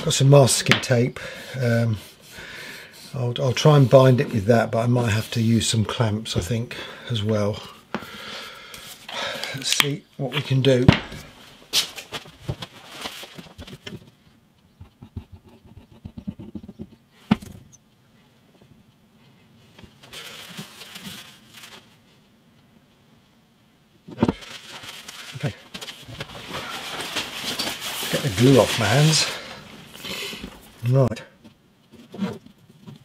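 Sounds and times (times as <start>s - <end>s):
scratchy rustling: 24.4s - 30.8s.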